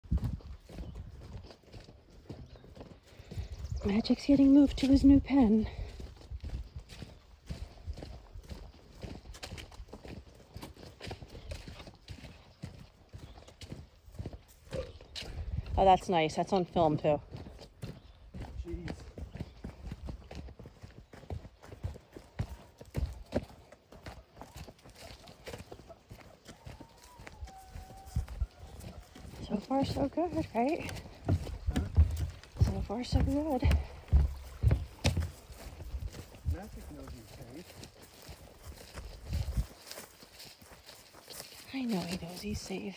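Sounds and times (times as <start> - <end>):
footsteps on wooden boards: 17.3 - 42.7.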